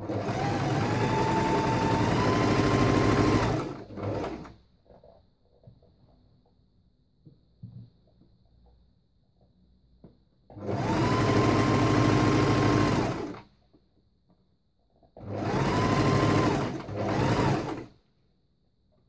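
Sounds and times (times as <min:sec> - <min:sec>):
electric sewing machine stitching: 0:00.0 - 0:04.6, 0:10.5 - 0:13.5, 0:15.2 - 0:17.9.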